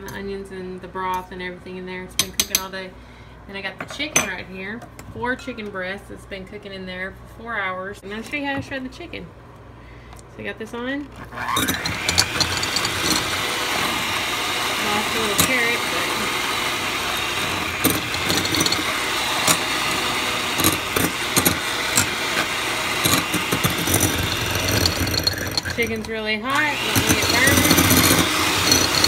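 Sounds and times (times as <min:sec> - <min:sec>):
electric hand mixer running: 0:11.3 - 0:29.0
metal beaters knocking glass bowl: 0:11.6 - 0:13.4, 0:17.5 - 0:19.7, 0:20.4 - 0:26.1, 0:26.8 - 0:29.0.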